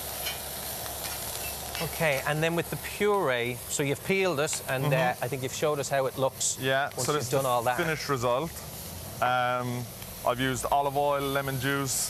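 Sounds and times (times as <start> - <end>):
squid sizzling on griddle pan: 0.0 - 12.0.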